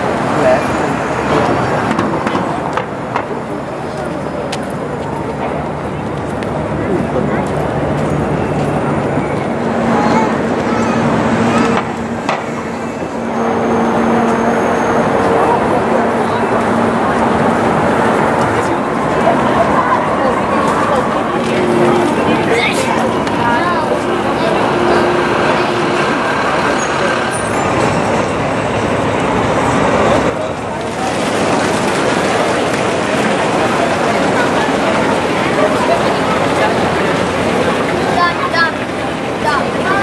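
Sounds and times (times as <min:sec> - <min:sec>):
city street traffic: 0:00.0 - 0:40.0
heavy vehicle running close: 0:00.0 - 0:40.0.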